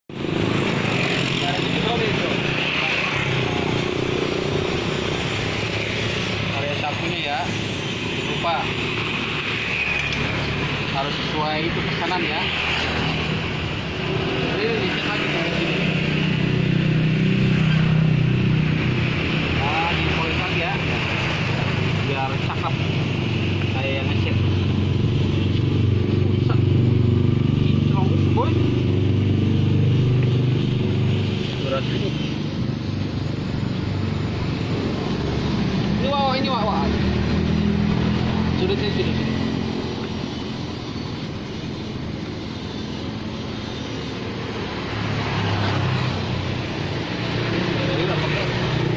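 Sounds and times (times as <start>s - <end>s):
street traffic: 0.0s - 48.9s
motorcycle engines passing: 0.1s - 48.9s.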